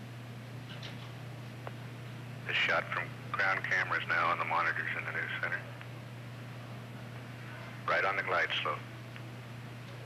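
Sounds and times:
low hum with faint hiss: 0:00.0 - 0:10.0
man's voice on radio: 0:02.5 - 0:05.6, 0:07.9 - 0:08.8.

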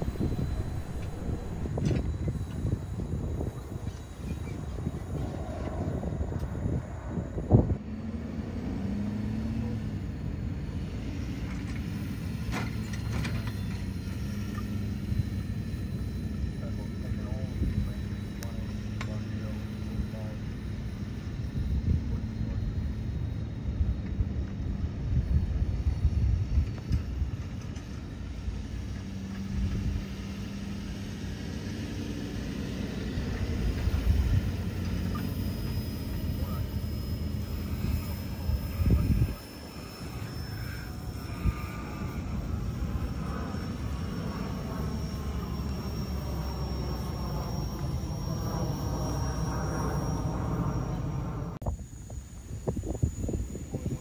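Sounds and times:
wind buffeting microphone: 0:00.0 - 0:09.0, 0:23.6 - 0:27.8, 0:37.0 - 0:44.0, 0:49.4 - 0:54.0
truck engine droning: 0:00.0 - 0:24.9, 0:28.3 - 0:51.6.

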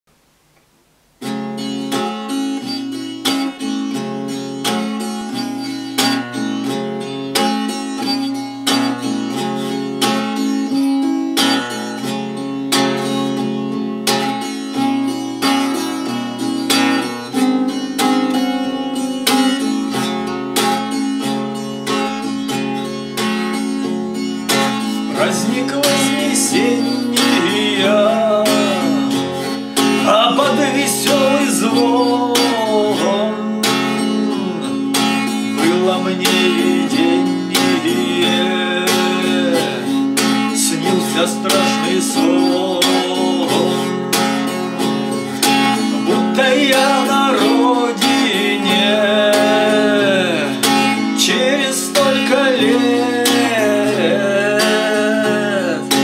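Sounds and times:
acoustic guitar strummed: 0:01.2 - 0:56.0
man singing: 0:24.8 - 0:44.6, 0:45.4 - 0:56.0.

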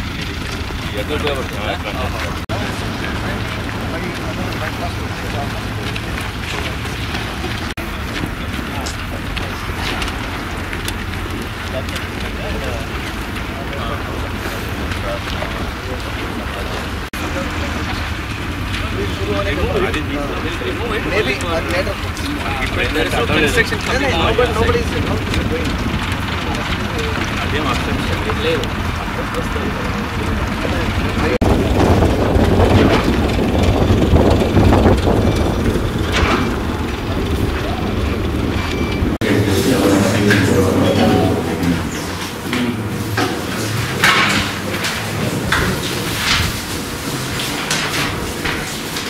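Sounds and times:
construction machinery engine rumble: 0:00.0 - 0:49.0
faint voices: 0:00.0 - 0:49.0
wind buffeting microphone: 0:00.0 - 0:49.0
people talking in background: 0:00.8 - 0:33.8, 0:34.6 - 0:46.5.

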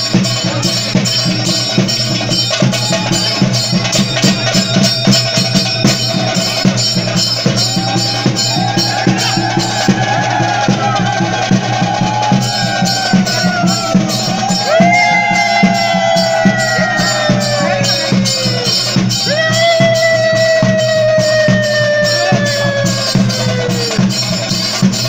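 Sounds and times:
fast drumming: 0:00.0 - 0:25.0
wind instrument long notes: 0:01.7 - 0:24.8.

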